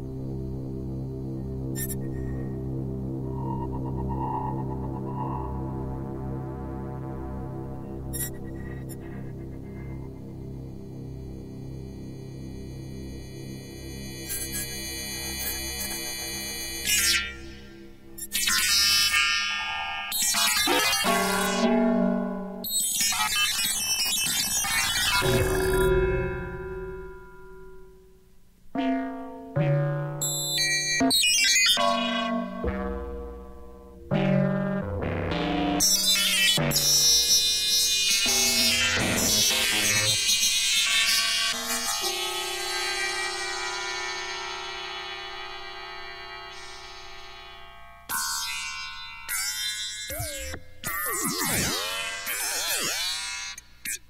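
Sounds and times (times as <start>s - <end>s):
synthesizer music: 2.8s - 8.2s, 49.8s - 53.3s.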